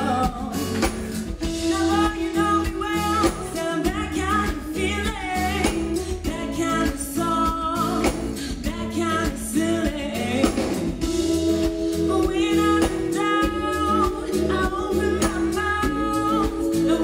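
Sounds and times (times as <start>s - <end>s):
amplified band accompaniment: 0.0s - 17.0s
woman singing pop song: 0.0s - 17.0s.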